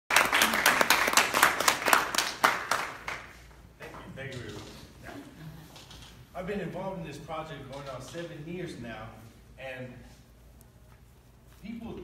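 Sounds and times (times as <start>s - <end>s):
audience clapping: 0.1s - 3.6s.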